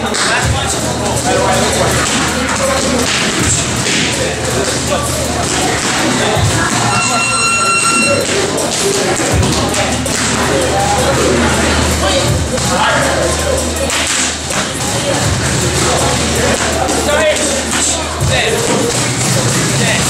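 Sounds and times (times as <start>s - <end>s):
music with steady bass: 0.0s - 20.0s
high electronic tone: 6.7s - 8.6s.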